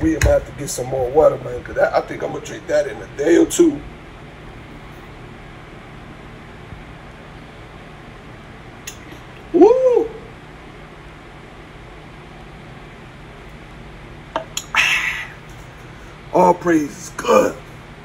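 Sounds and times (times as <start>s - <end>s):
low steady hum: 0.0s - 18.0s
short rising falling call: 9.5s - 10.4s, 14.6s - 15.4s.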